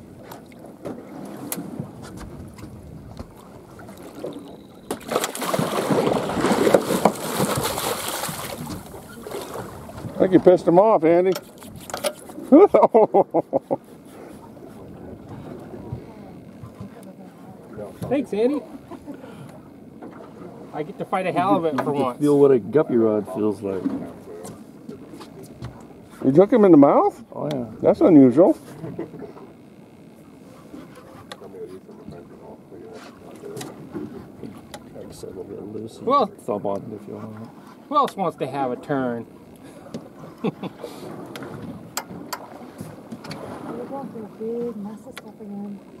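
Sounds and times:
person laughing: 0:12.5 - 0:13.8, 0:40.4 - 0:40.9.

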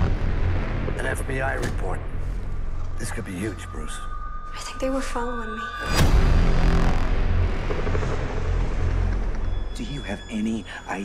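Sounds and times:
loud low rumble: 0:05.9 - 0:09.7.

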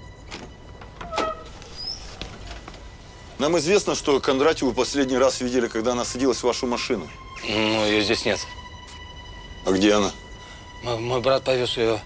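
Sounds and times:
door lock and latch clicks: 0:00.3 - 0:01.7.

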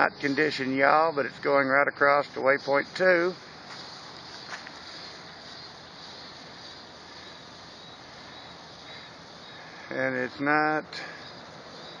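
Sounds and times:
faint high whine: 0:00.0 - 0:12.0
faint outdoor background noise: 0:00.0 - 0:12.0.

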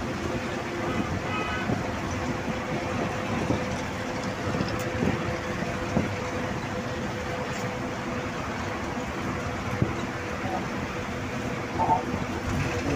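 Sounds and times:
road and engine noise inside vehicle: 0:00.0 - 0:12.9.

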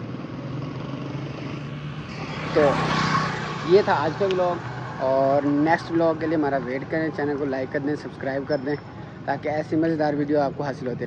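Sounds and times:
road traffic noise: 0:00.0 - 0:11.0
vehicle engine humming: 0:00.0 - 0:11.0.

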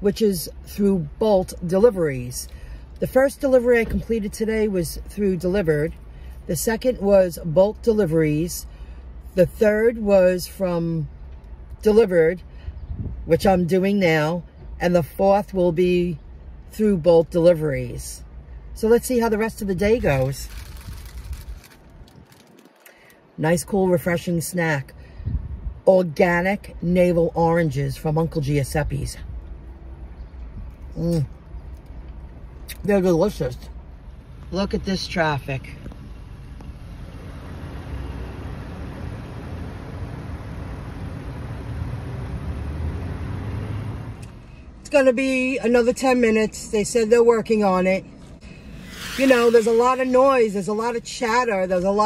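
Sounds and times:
car cabin engine and road rumble: 0:00.0 - 0:52.0
low rumble: 0:19.6 - 0:22.6.

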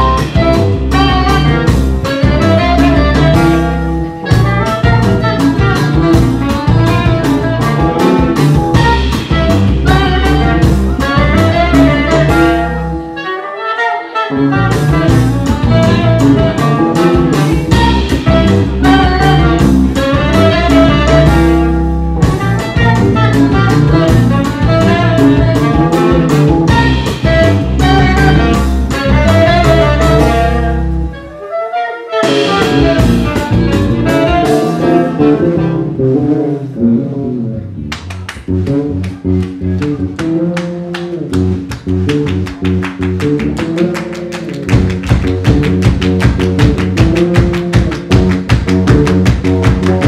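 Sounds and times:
saxophones: 0:00.0 - 0:37.5
bass guitar: 0:00.0 - 0:50.0
drums: 0:00.0 - 0:50.0.

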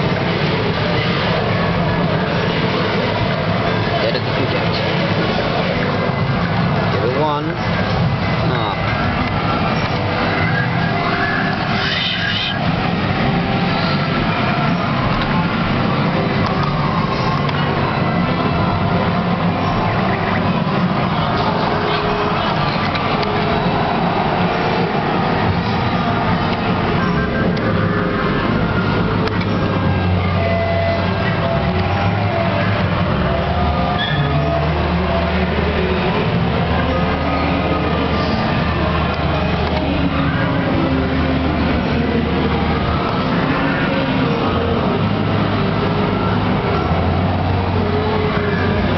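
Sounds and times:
loud background din: 0:00.0 - 0:48.9.

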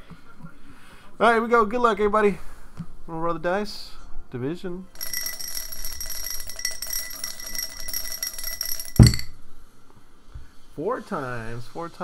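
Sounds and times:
die rattling in a shot glass: 0:05.0 - 0:09.4
glass slammed onto table: 0:09.0 - 0:09.4.

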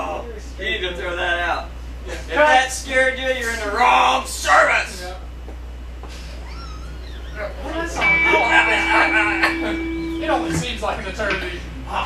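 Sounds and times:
men talking: 0:00.0 - 0:05.4, 0:07.0 - 0:12.0
men laughing: 0:06.2 - 0:11.1
steady held tone: 0:08.0 - 0:12.0.

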